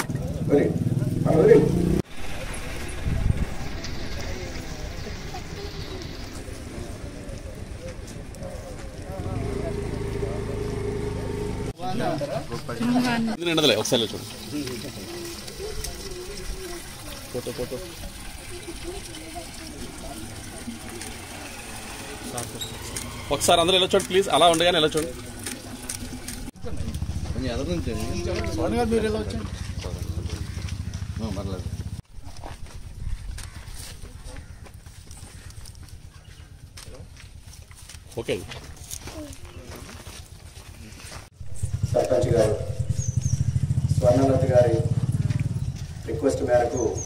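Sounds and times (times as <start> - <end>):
vehicle engine running: 0.0 - 13.3, 14.7 - 32.0, 38.7 - 46.8
people talking: 0.0 - 22.7, 23.3 - 25.2, 26.6 - 30.5, 31.2 - 31.7, 41.9 - 42.7, 44.0 - 45.0, 46.1 - 47.0
water running into steel can: 13.4 - 26.6.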